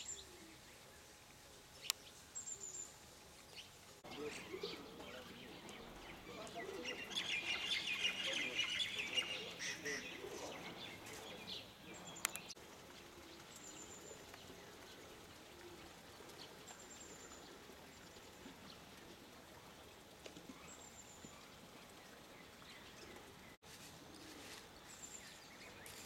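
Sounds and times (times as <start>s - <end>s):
birds chirping: 0.0s - 26.0s
outdoor ambience: 0.0s - 26.0s
click: 12.2s - 12.5s.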